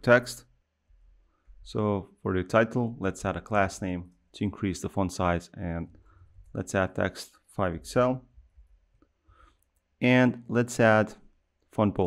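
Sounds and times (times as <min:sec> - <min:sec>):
person speaking: 0:00.0 - 0:00.6, 0:01.6 - 0:08.6, 0:09.8 - 0:12.0.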